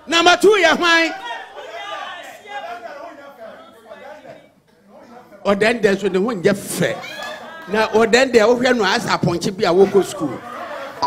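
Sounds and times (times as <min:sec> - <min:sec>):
audience chatter: 0:01.0 - 0:11.0
microphone speech: 0:07.7 - 0:10.5.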